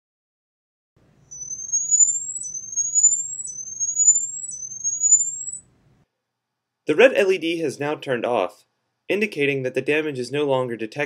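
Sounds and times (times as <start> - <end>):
high-pitched rising whines: 1.3 - 5.6.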